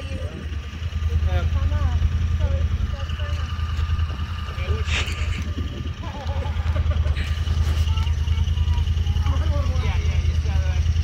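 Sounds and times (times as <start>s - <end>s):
engine idling: 0.0s - 11.0s
people talking in background: 0.0s - 11.0s.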